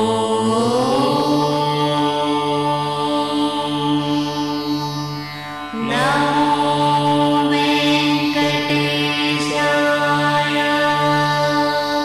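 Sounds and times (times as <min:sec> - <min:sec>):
long held chanted vocal note: 0:00.0 - 0:12.0
steady drone: 0:00.0 - 0:12.0.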